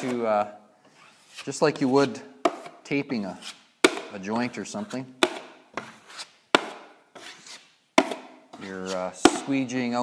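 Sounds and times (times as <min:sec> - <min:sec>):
taping knife scraping compound: 0:00.0 - 0:09.9.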